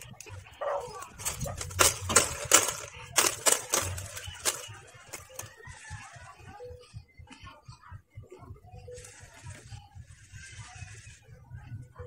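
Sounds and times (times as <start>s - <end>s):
dog barking: 0.6s - 1.6s.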